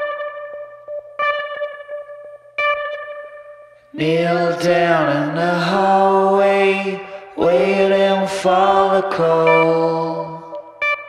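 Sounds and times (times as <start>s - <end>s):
guitar ringing note: 0.0s - 4.0s.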